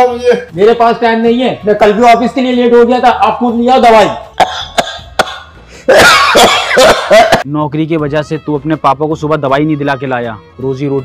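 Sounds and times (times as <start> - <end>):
man talking agitatedly: 0.0 - 4.3, 7.4 - 11.0
harsh cough: 4.4 - 7.5.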